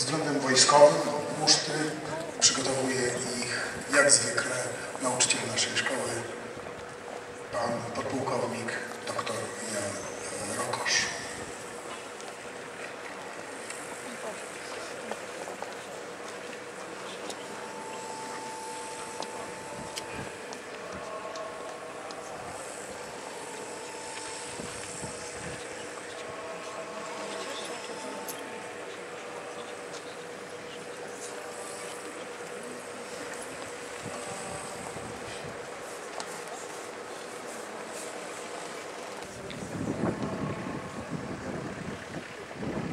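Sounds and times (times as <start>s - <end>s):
faint scattered chatter: 0.0s - 42.9s
street noise: 0.0s - 42.9s.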